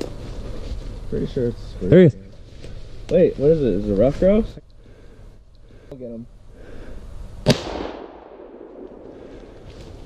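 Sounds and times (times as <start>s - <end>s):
low background hiss: 0.0s - 10.0s
shotgun shot echo: 7.4s - 9.2s.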